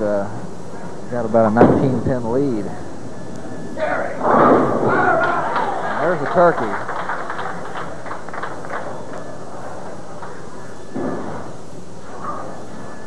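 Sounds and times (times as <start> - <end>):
thump: 1.6 - 2.1, 4.2 - 5.0, 11.0 - 11.5
crowd murmur: 2.7 - 13.0.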